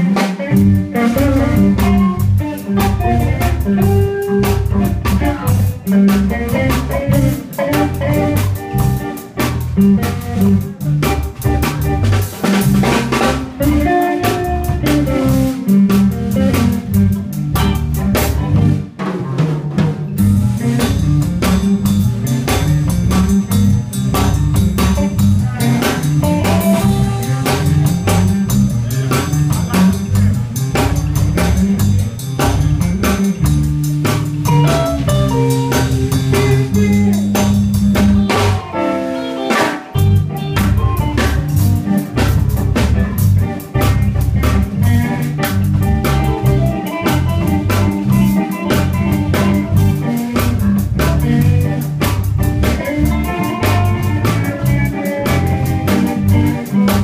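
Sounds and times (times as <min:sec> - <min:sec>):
electric guitar: 0:00.0 - 0:57.0
live blues band: 0:00.0 - 0:57.0.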